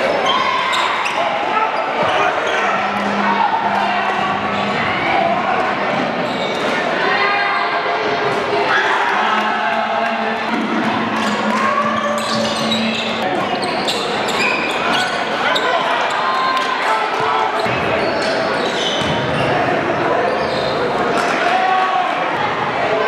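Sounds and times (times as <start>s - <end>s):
voices of players and spectators: 0.0s - 23.0s.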